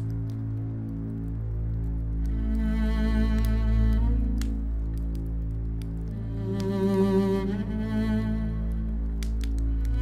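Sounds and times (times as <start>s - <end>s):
low steady drone: 0.0s - 10.0s
sustained bowed strings: 2.0s - 10.0s.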